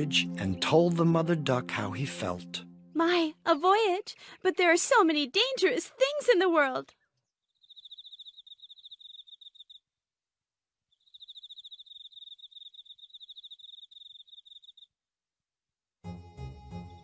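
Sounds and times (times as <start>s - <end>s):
cricket chirping: 7.6s - 9.8s, 10.9s - 14.9s.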